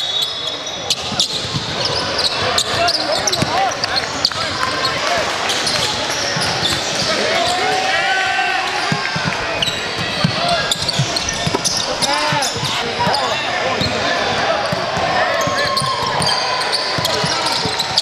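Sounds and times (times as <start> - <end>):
sneakers squeaking: 0.0 - 7.9, 8.6 - 18.0
crowd talking and calling: 0.0 - 18.0.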